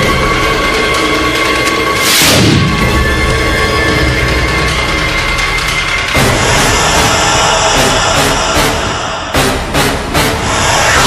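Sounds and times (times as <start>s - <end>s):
tense background music drone: 0.0s - 11.0s.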